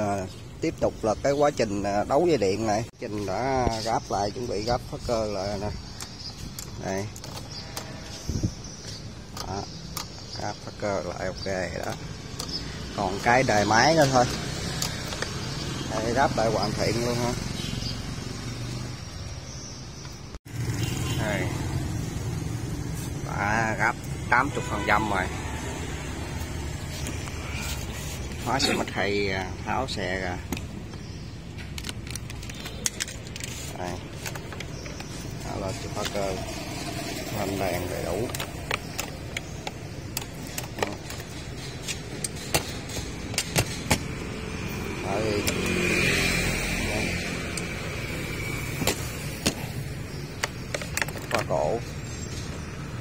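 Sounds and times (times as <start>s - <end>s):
plastic and metal clicks and rattles: 31.6s - 35.1s, 50.4s - 51.5s
metal tools clicking: 37.9s - 44.4s.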